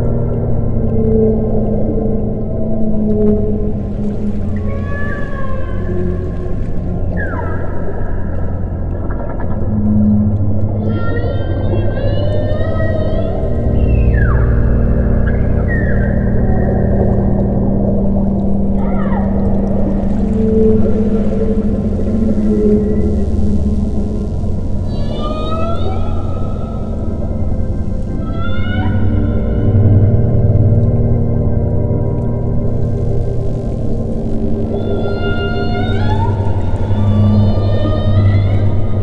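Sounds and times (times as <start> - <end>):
ambient low drone: 0.0 - 39.0
whale calls: 0.9 - 31.5, 32.1 - 39.0.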